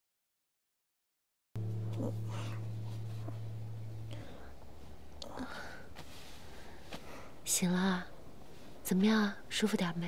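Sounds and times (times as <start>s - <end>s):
low steady hum: 1.6s - 10.0s.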